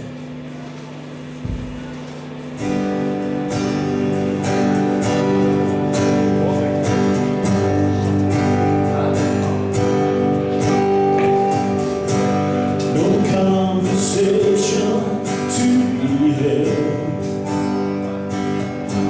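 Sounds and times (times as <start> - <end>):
acoustic guitar strumming: 0.0 - 19.0
bass guitar: 0.0 - 19.0
drums: 0.0 - 19.0
electric guitar: 0.0 - 19.0.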